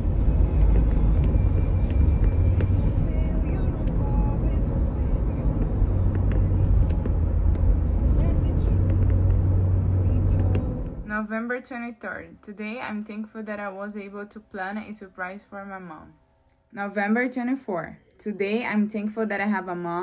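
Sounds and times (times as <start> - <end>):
car road and engine rumble: 0.0 - 11.2.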